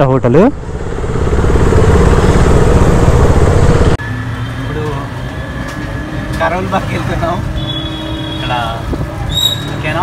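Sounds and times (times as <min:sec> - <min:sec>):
motorcycle engine rumbling: 0:00.0 - 0:10.0
wind noise: 0:08.8 - 0:09.7.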